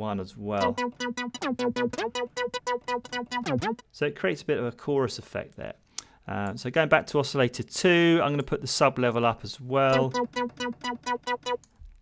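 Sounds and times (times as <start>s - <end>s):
synth short repeated notes: 0.6s - 3.8s, 9.9s - 11.7s.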